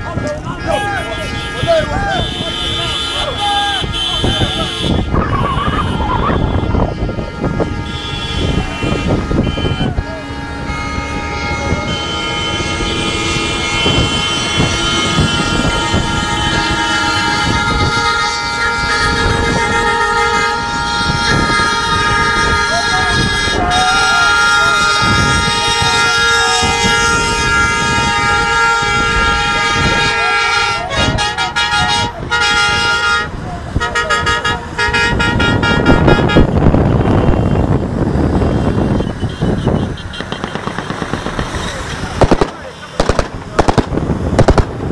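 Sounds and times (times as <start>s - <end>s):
men's voices: 0.0s - 6.0s, 41.0s - 44.0s
vehicle horns honking: 0.0s - 43.8s
engine noise: 0.0s - 44.9s
loud rushing noise: 35.5s - 44.9s.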